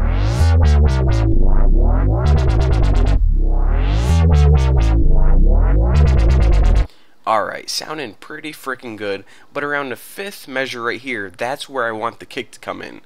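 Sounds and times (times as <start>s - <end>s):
dubstep wobble bass: 0.0s - 6.9s.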